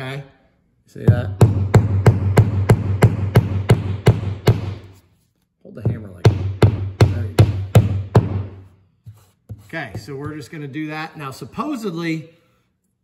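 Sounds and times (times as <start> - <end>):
hammer tapping anchor into drywall: 1.1 - 5.0, 5.7 - 10.8.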